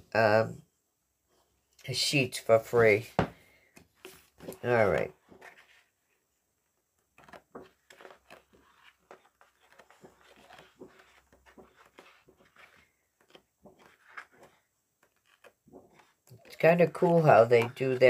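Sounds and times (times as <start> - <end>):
paper sheets being turned: 4.0 - 5.9, 7.2 - 18.0.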